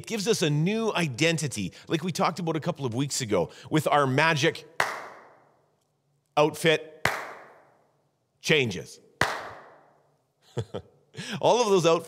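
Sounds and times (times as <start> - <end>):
hand clap ringing in room: 4.8 - 5.4, 7.0 - 7.8, 9.2 - 9.9
soft chuckle: 10.5 - 10.9.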